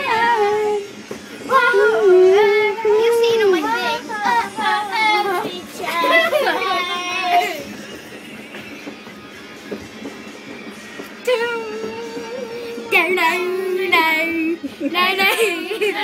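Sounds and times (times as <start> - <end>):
children singing and shouting: 0.0 - 0.8, 1.4 - 7.8
music: 0.0 - 16.0.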